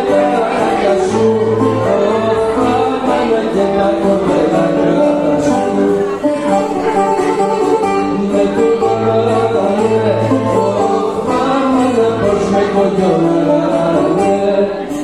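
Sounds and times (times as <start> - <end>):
plucked bouzouki: 0.0 - 15.0
strummed acoustic guitar: 0.0 - 15.0.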